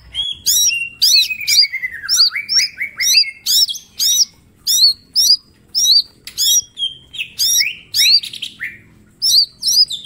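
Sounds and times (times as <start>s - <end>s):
bird singing whistled notes: 0.0s - 10.0s.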